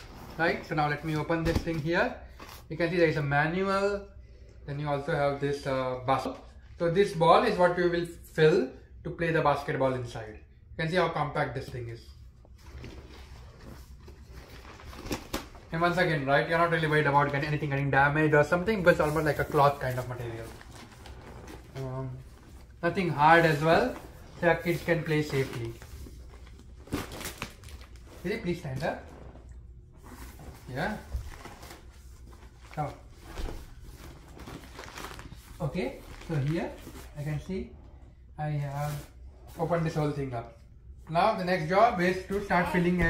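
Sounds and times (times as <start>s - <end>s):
vinyl rustling and crinkling: 11.6s - 17.9s, 18.5s - 37.8s
fabric rustling: 18.8s - 27.0s.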